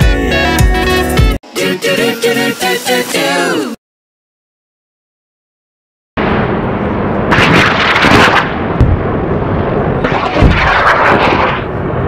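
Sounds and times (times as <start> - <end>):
deep booms: 6.2 - 9.3, 10.0 - 12.0
electric crackling: 7.3 - 8.8, 10.0 - 12.0.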